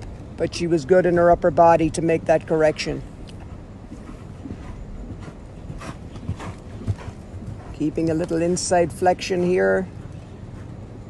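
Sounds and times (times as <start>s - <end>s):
low steady rumble: 0.0s - 11.0s
muffled hoofbeats on sand: 3.4s - 8.6s.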